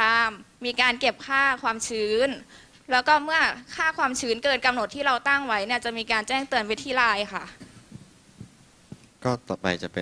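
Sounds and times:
woman speaking through microphone: 0.0s - 7.6s
faint low thumps: 7.6s - 9.0s.

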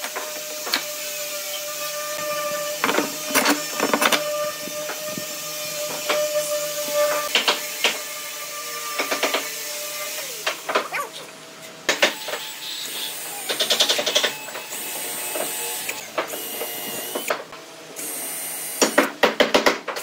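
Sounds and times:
workshop hum: 0.0s - 20.0s.

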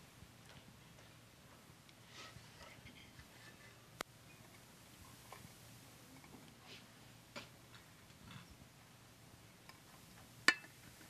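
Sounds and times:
soft rustle: 0.6s - 7.2s.

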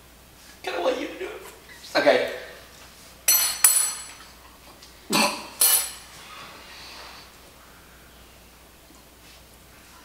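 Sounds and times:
metal spoons clinking on dishes: 3.3s - 4.3s, 5.5s - 6.1s.

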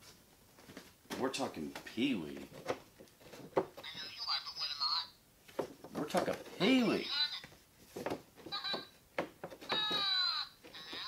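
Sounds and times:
toy voice from small speaker: 3.9s - 5.1s, 7.0s - 7.4s, 8.6s - 8.9s, 9.8s - 11.0s.

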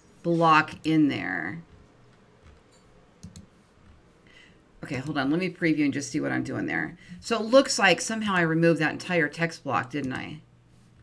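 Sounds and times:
woman speaking: 0.0s - 1.7s, 4.8s - 10.4s
computer mouse clicks: 2.1s - 3.6s.

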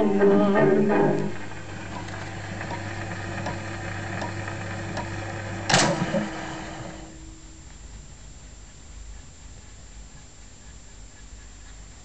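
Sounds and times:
record surface hiss: 0.0s - 12.0s
steady hum: 0.0s - 12.0s.

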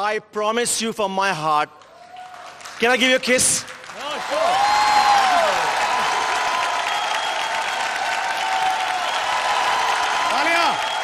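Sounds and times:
audience applauding: 1.8s - 11.0s
people whooping: 4.0s - 11.0s.

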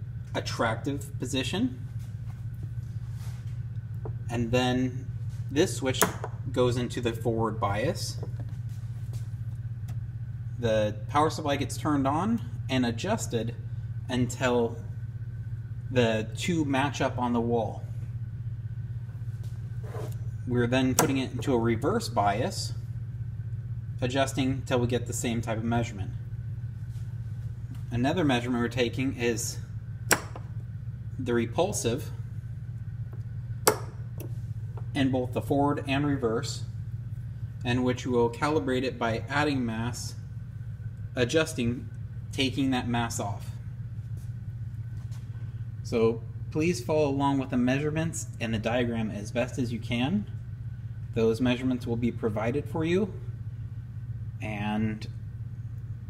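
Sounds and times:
steady low hum: 0.0s - 56.0s.

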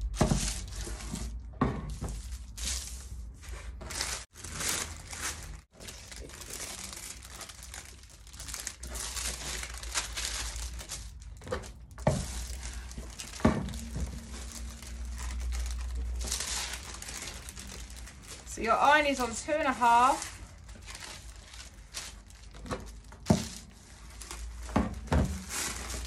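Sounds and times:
foil packets and paper crinkling: 2.0s - 26.0s.

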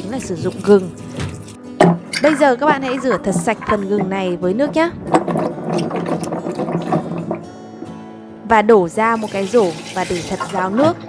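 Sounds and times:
water sloshing: 0.0s - 8.1s
ginger roots clattering in glass bowl: 0.3s - 7.5s.

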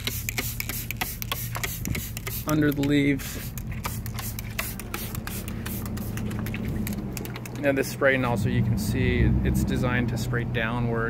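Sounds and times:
spray bottle spritzing: 0.0s - 7.7s.

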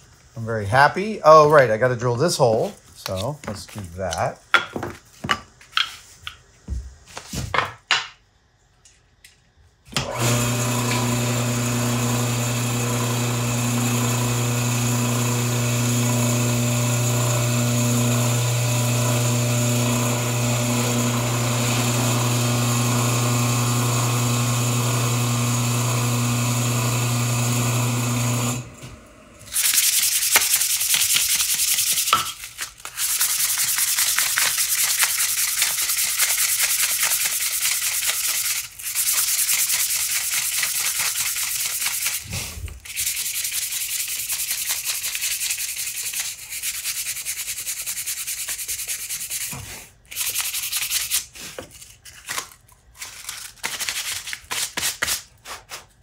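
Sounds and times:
drill press motor humming: 10.0s - 29.5s
sandpaper rubbing on wood: 29.6s - 32.2s, 32.8s - 51.5s.

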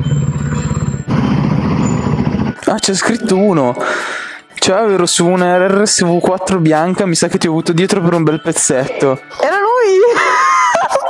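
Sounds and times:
motorcycle engines running: 0.0s - 2.6s.

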